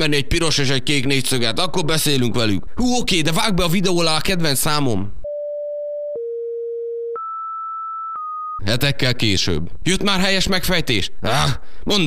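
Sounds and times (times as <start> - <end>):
electronic beep tones: 7.1 - 8.6.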